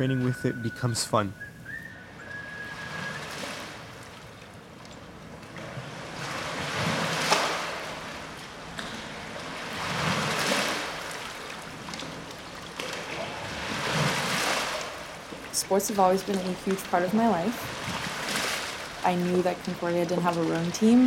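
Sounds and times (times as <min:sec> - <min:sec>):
rushing splashing water: 0:02.3 - 0:04.4, 0:05.6 - 0:21.0.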